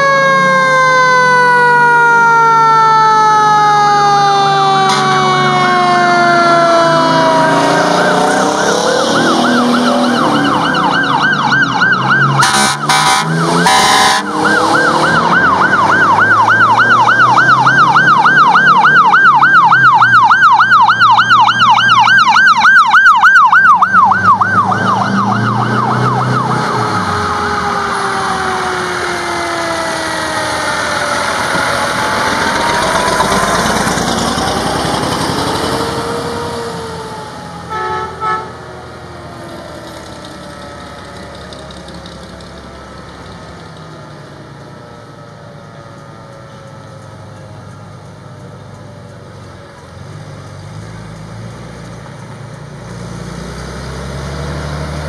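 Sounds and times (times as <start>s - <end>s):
siren yelp: 0.0s - 41.8s
fire truck siren wailing: 0.0s - 50.2s
fire truck engines rumbling: 0.0s - 55.0s
short loud horn blasts: 12.4s - 14.3s, 37.7s - 38.6s.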